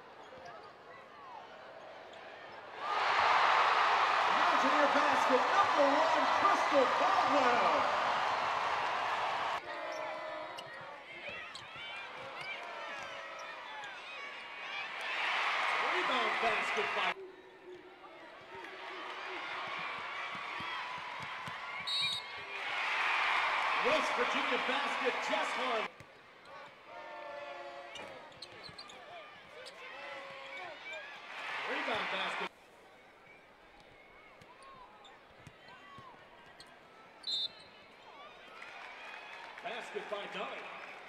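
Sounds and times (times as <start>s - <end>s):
murmur of arena crowd: 0.0s - 41.0s
whistle blast: 21.9s - 22.3s.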